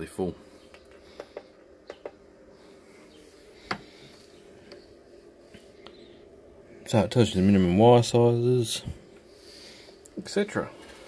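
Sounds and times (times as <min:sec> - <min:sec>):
faint pulsing electronic hum: 0:00.0 - 0:11.0.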